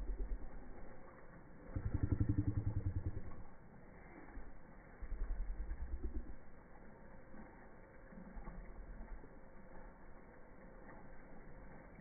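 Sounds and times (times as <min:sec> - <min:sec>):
motor engine running: 0:00.0 - 0:06.7.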